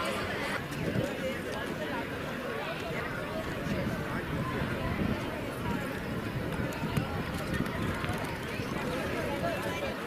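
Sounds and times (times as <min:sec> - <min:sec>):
crowd chatter outdoors: 0:00.0 - 0:10.0.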